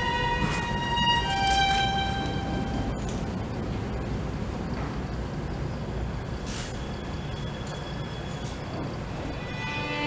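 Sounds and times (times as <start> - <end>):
violin playing held notes: 0.0 - 2.9, 9.3 - 10.0.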